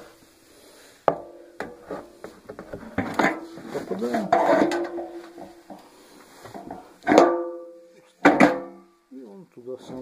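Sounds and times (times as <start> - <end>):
metal drum knocking: 6.6 - 8.8.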